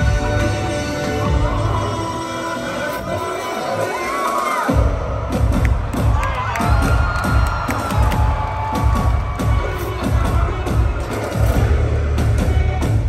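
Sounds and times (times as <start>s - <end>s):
electronic music with heavy bass: 0.0s - 13.0s
crowd cheering and whooping: 3.4s - 11.6s.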